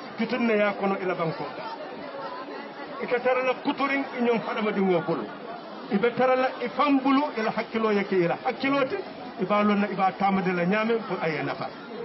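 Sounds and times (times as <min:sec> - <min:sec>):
indistinct chatter: 0:00.0 - 0:12.0.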